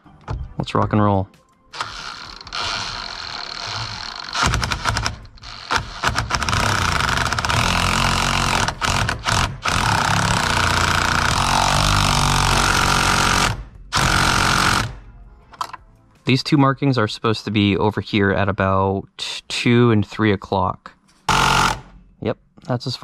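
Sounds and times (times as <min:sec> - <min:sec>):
impact driver hammering bolt: 0:03.8 - 0:15.0, 0:21.3 - 0:22.0.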